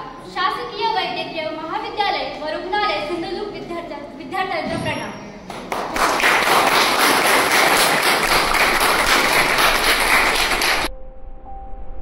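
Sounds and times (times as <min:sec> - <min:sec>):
audience applauding loudly: 0:05.6 - 0:10.9.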